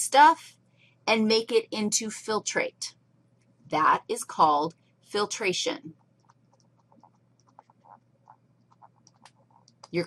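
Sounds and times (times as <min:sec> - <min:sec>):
stylus scratching on tablet screen: 0:05.8 - 0:10.0.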